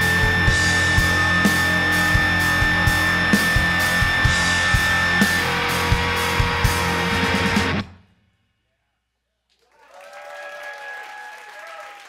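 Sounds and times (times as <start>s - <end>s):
drums keeping a steady beat: 0.0s - 7.9s
distorted electric guitars: 0.0s - 8.0s
bass: 0.0s - 8.1s
cymbals: 0.0s - 8.1s
high held guitar note: 0.0s - 8.1s.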